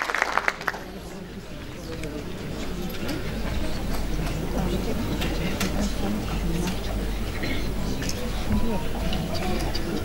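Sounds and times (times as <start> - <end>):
audience murmuring: 0.0 - 10.0.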